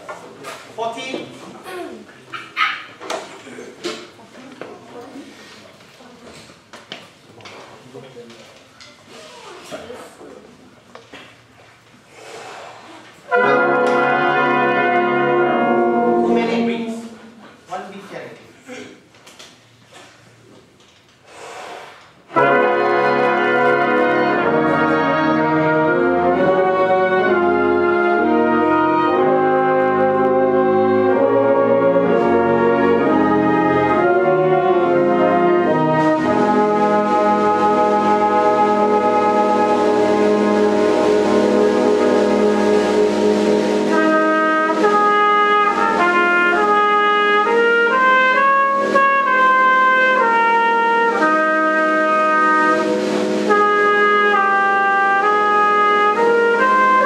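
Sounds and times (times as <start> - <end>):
wind band playing held chords: 13.3 - 17.6, 22.3 - 57.0
high shimmering wash: 36.4 - 45.0, 51.9 - 54.4.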